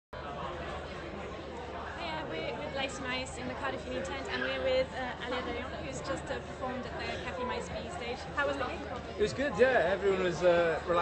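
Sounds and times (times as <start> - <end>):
murmur of many voices: 0.2 - 11.0.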